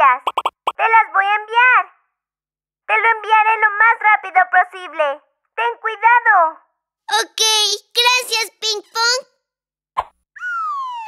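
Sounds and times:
high-pitched cartoon voice: 0:07.1 - 0:09.3
falling whistle sound effect: 0:10.4 - 0:11.0.

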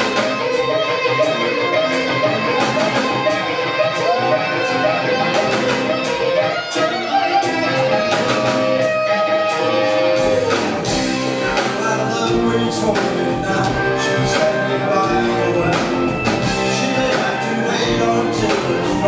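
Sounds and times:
drums: 0:00.0 - 0:19.0
electric guitar: 0:00.0 - 0:19.0.

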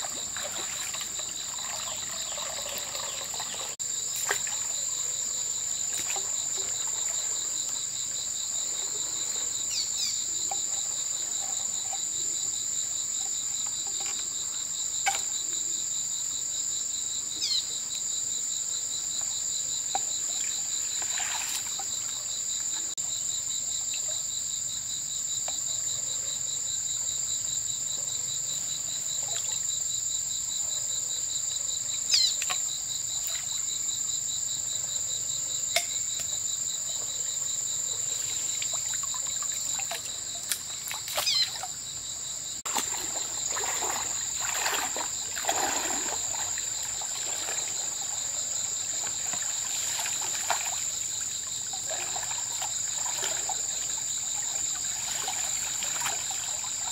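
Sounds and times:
high-pitched insect buzz: 0:41.1 - 0:41.6.

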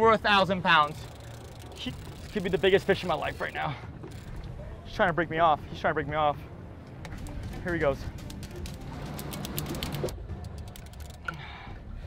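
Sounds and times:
fishing reel clicking: 0:00.6 - 0:04.5, 0:08.2 - 0:11.5.

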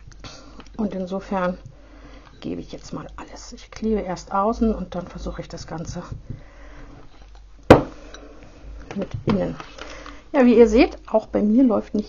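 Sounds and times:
quiet handling noise: 0:00.0 - 0:10.2.

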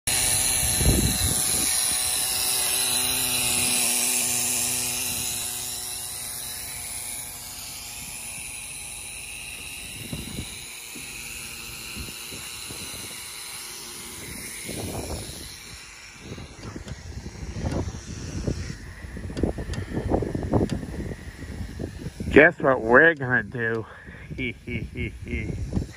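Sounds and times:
wind buffeting microphone: 0:00.3 - 0:02.3, 0:09.8 - 0:11.1, 0:14.1 - 0:25.9.

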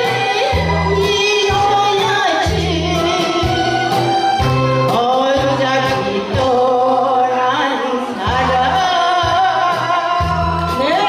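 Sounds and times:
amplified backing music: 0:00.0 - 0:11.0
woman singing into microphone: 0:00.0 - 0:11.0.

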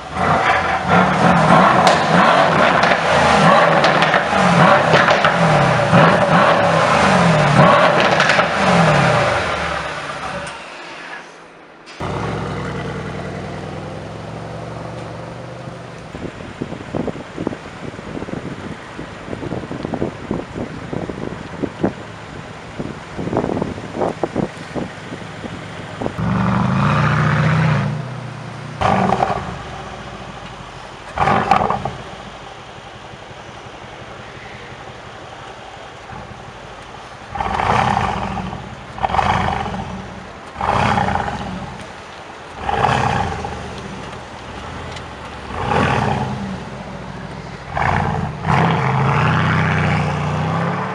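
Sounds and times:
car engine revving: 0:00.0 - 0:10.6, 0:11.9 - 0:50.9
exhaust crackles and pops: 0:00.0 - 0:10.6, 0:11.9 - 0:50.3
car engine idling: 0:11.9 - 0:50.2.

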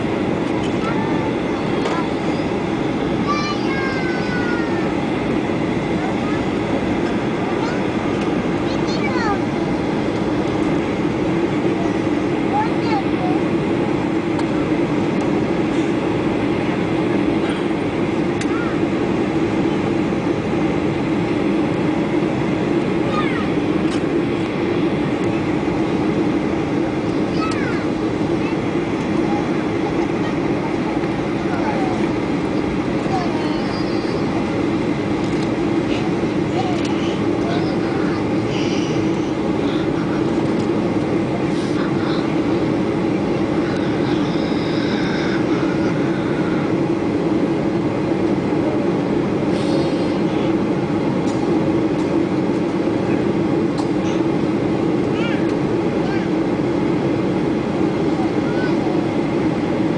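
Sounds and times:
airliner cabin engine drone: 0:00.0 - 0:59.9.

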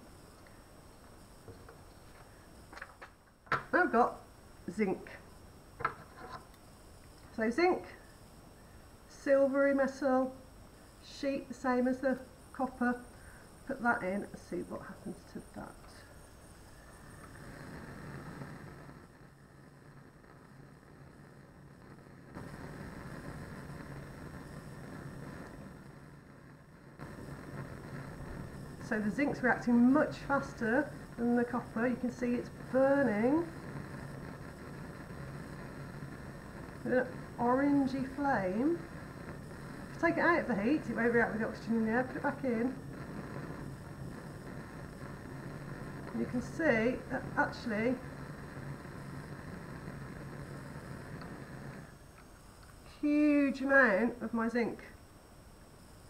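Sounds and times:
gas flame rushing: 0:00.0 - 0:56.0.

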